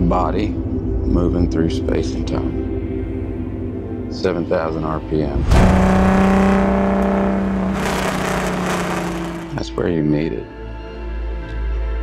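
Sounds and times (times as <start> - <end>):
race car engine at high revs: 5.5 - 9.6.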